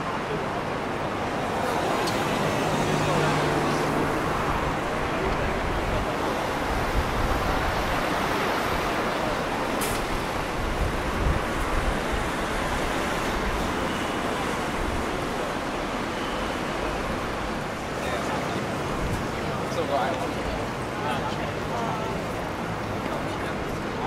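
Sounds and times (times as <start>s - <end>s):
passing road vehicles: 0.0s - 24.0s.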